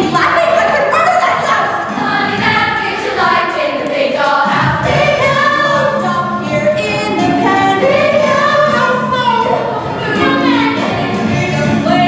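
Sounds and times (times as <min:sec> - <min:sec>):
girls singing together: 0:00.0 - 0:12.0.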